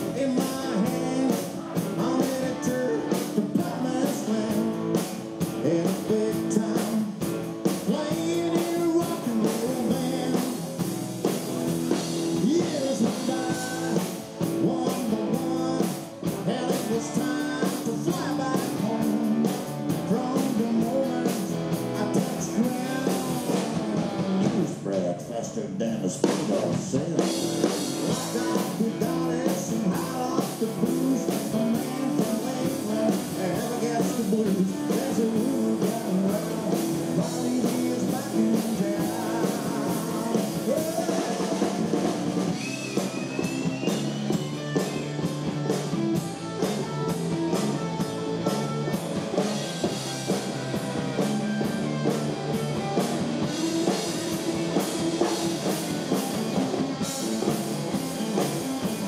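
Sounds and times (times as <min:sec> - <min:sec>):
person singing: 0:00.0 - 0:11.0, 0:12.2 - 0:25.2, 0:26.2 - 0:49.0
live rock band playing: 0:00.0 - 0:59.0.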